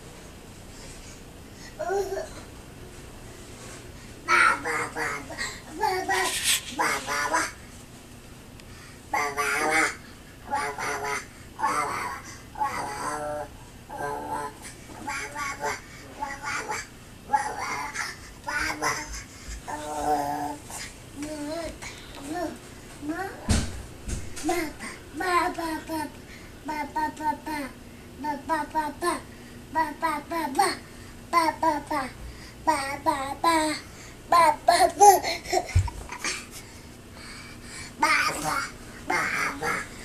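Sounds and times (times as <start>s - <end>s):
toddler babbling: 1.8s - 2.4s, 4.3s - 7.6s, 9.2s - 23.5s, 24.4s - 36.5s, 38.0s - 40.0s.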